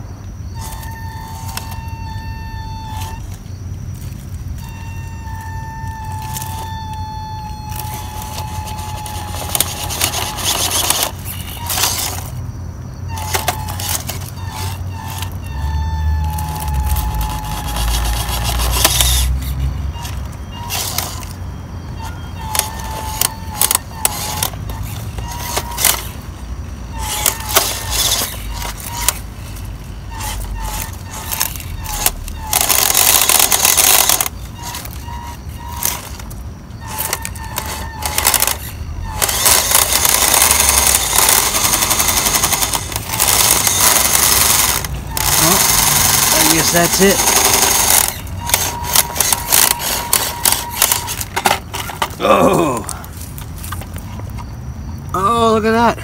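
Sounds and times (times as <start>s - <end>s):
small electric motor whining: 0.0s - 54.2s.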